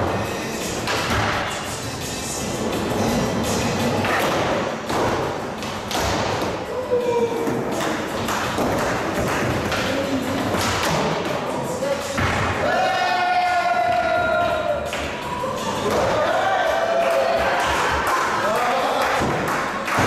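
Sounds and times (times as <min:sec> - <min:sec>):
skateboard clacks and thuds: 0:07.5 - 0:11.2.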